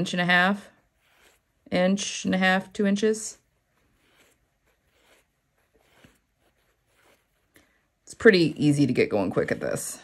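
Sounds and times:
faint rustles of thread: 0.4s - 1.8s, 3.2s - 8.1s.

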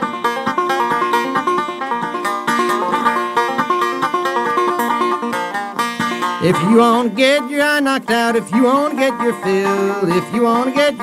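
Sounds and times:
string band playing lively tune: 0.0s - 11.0s
man singing: 6.4s - 11.0s.

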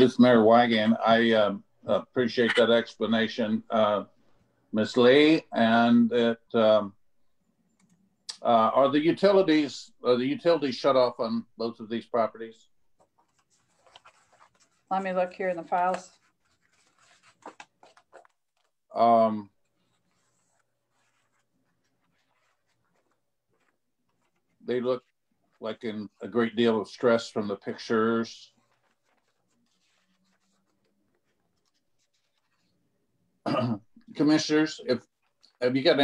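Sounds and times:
rustling of files: 13.0s - 18.9s, 19.5s - 25.7s, 27.4s - 32.9s.

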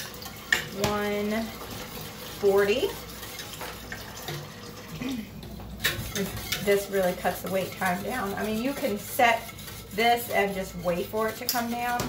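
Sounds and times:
tap water running into sink: 0.0s - 6.7s.

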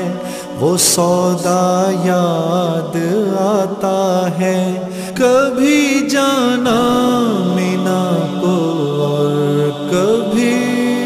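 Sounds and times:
man singing long note: 0.0s - 11.0s.

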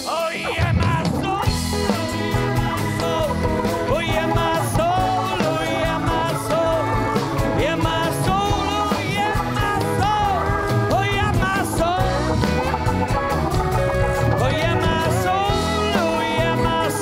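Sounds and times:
live rock band playing: 0.0s - 17.0s
pitch-bending lead line: 0.6s - 17.0s.

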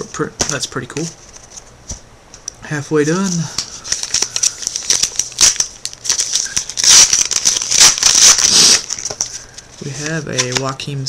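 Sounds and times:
wrapper crinkling: 3.1s - 10.8s
foil pack tearing open: 3.8s - 9.5s.

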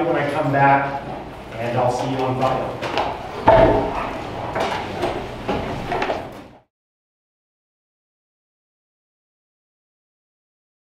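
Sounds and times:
students shuffling: 0.0s - 6.6s
knocks: 3.5s - 4.1s.

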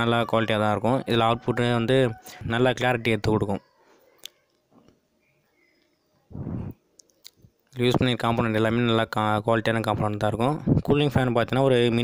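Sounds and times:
man speaking: 0.0s - 3.6s, 7.8s - 12.0s
breath puff on microphone: 6.3s - 6.8s
mouth clicks: 6.4s - 7.5s.

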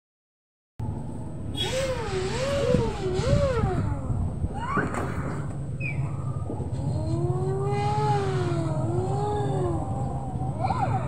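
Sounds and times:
low rumble: 0.8s - 11.0s
voice imitating motor hum: 1.6s - 4.3s, 6.6s - 11.0s.

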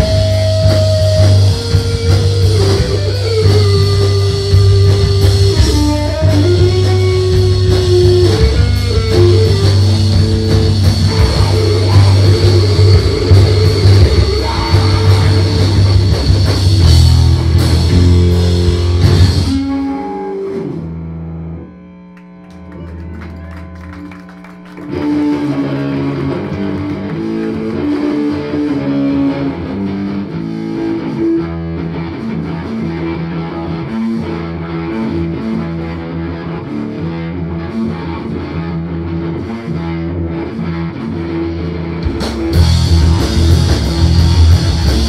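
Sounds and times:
drums: 0.0s - 21.0s, 22.2s - 45.0s
bass guitar: 0.0s - 45.0s
electric guitar riff: 0.0s - 45.0s.

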